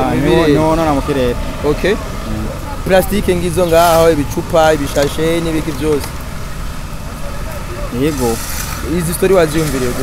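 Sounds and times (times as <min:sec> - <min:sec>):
men talking: 0:00.0 - 0:10.0.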